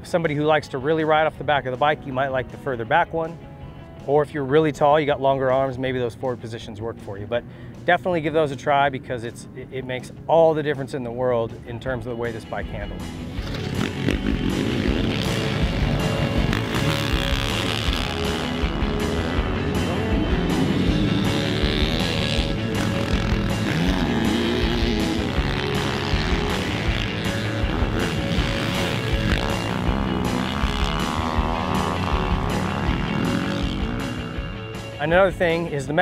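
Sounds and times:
rock music with steady beat: 12.8 - 35.6
motocross bike engine revving: 13.1 - 34.8.

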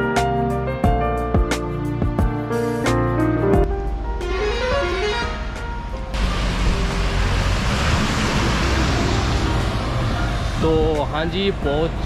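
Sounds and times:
piano-like background music: 0.0 - 12.0
highway traffic noise: 4.0 - 12.0.

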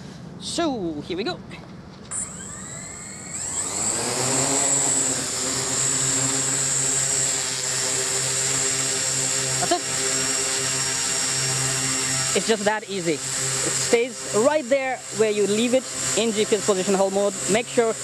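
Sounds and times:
drone rotors whining: 2.0 - 18.0.

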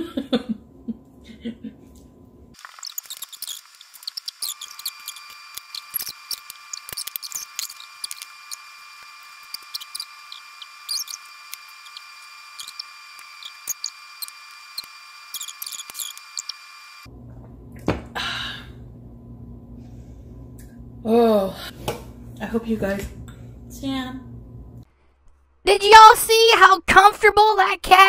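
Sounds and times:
steady high hum: 0.0 - 24.9.

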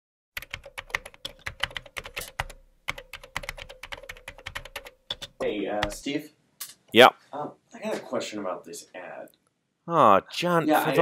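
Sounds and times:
typing on computer keyboard: 0.4 - 6.0.

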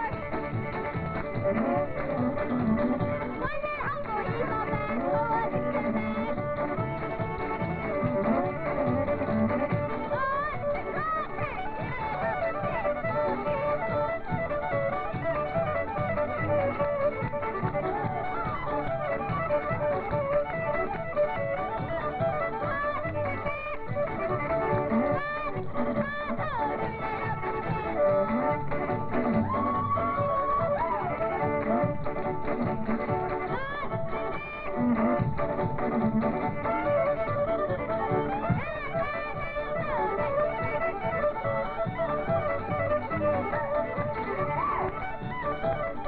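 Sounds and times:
string band with fiddles playing: 0.0 - 46.0.

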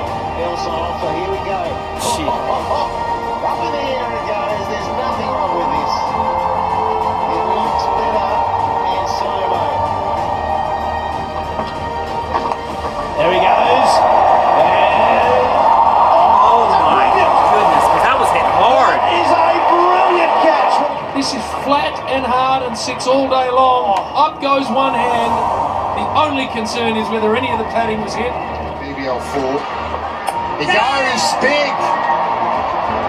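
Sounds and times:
broadcast commentary: 0.0 - 32.0
background music: 0.0 - 33.0
stadium crowd noise: 0.0 - 33.0.

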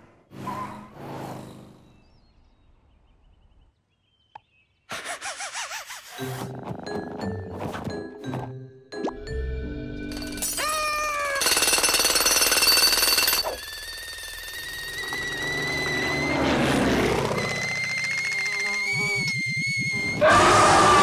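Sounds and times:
loud rapid cartoon rattle: 4.9 - 6.2, 10.4 - 16.2, 17.0 - 20.2
long steady whistling tone: 13.4 - 20.2
loud scream: 18.9 - 21.0.

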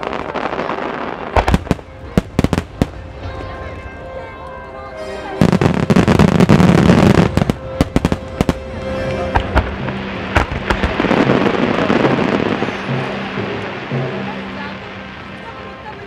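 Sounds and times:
fireworks crackling: 0.0 - 4.6, 5.2 - 16.0.

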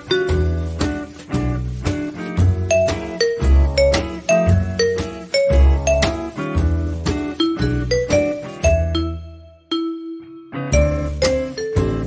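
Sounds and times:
pulsing bass line: 0.0 - 9.5, 10.7 - 12.0
light instrumental tune: 0.0 - 12.0.

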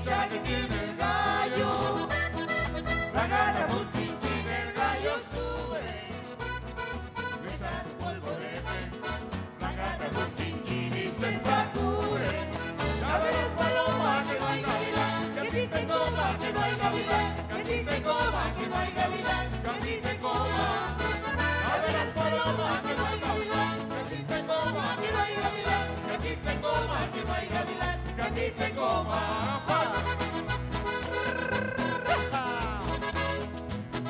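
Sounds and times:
voices singing: 0.0 - 33.4
strummed acoustic guitars: 0.0 - 34.0.

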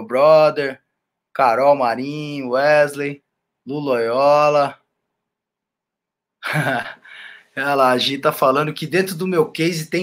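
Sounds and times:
man clearing throat or laughing: 6.4 - 7.1.

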